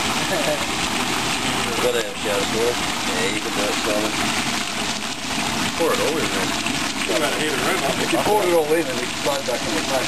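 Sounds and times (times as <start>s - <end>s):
hissing and bubbling water: 0.0s - 10.0s.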